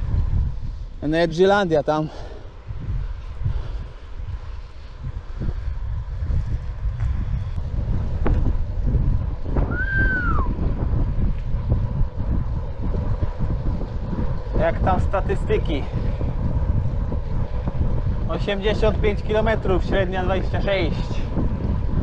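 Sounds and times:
wind buffeting microphone: 0:00.0 - 0:22.0
whistle-like tone: 0:09.7 - 0:10.5.

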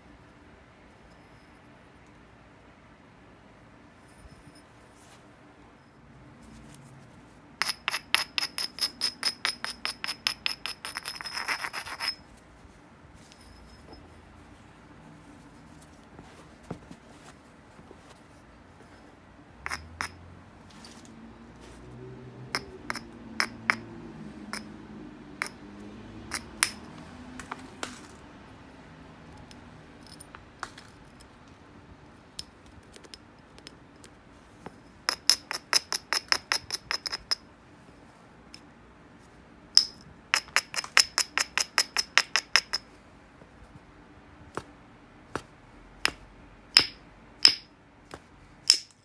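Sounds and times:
stone clicking on glassy stone: 0:07.6 - 0:12.2, 0:19.7 - 0:20.2, 0:26.3 - 0:26.9, 0:39.8 - 0:42.8, 0:46.8 - 0:47.7, 0:48.7 - 0:49.0.

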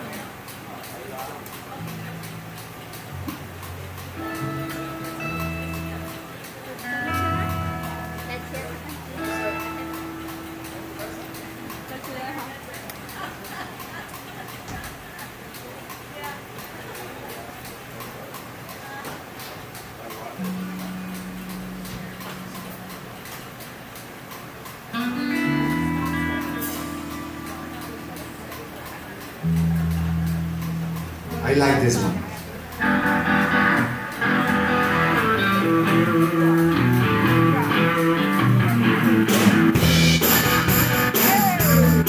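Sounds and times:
amplified electric guitar: 0:00.0 - 0:14.9, 0:19.9 - 0:42.0
people talking: 0:00.0 - 0:23.8, 0:25.4 - 0:42.0
bass guitar: 0:01.4 - 0:12.6, 0:20.4 - 0:23.9, 0:24.8 - 0:42.0.

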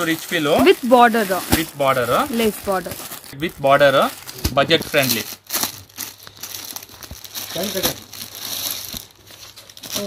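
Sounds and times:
plastic packaging crinkling: 0:00.0 - 0:10.0.

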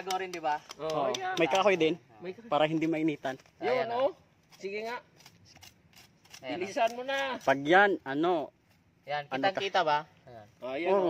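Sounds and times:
knife scraping in gritty sand: 0:04.4 - 0:07.7.

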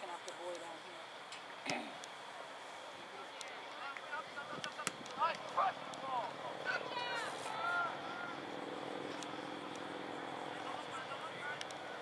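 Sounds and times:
steady engine-like drone: 0:00.0 - 0:12.0
people shouting calls: 0:03.2 - 0:08.5.

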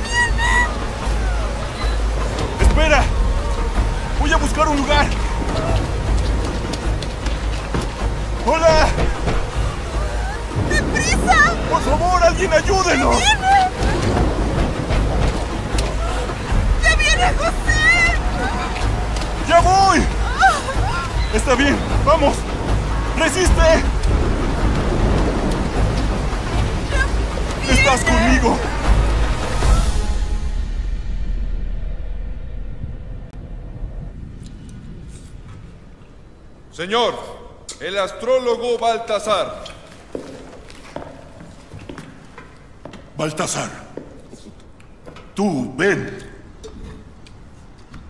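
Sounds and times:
rushing water: 0:00.0 - 0:31.2, 0:37.4 - 0:48.0
steady low rumble: 0:00.0 - 0:36.8.

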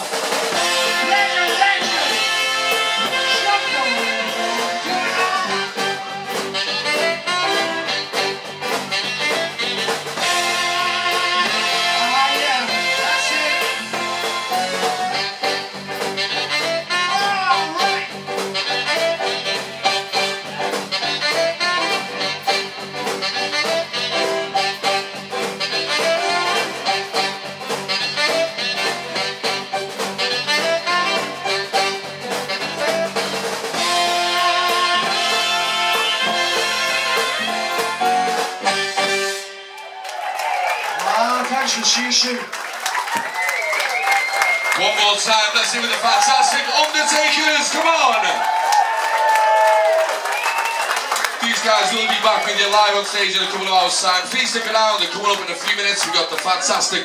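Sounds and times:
keyboard: 0:00.0 - 0:39.9
saxophone: 0:00.4 - 0:39.9.

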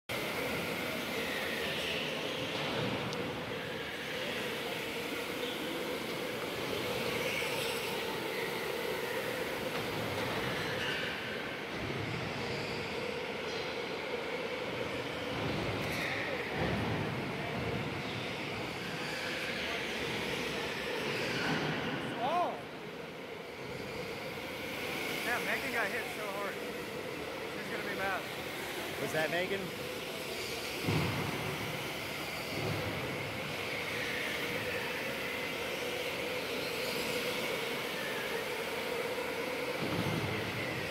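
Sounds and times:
electric go-kart motor whine: 0:00.1 - 0:40.9.

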